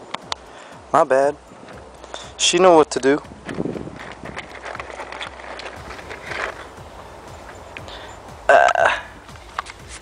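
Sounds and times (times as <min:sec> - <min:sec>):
handling clicks and rustles: 0:00.0 - 0:10.0
low outdoor rumble: 0:00.0 - 0:10.0.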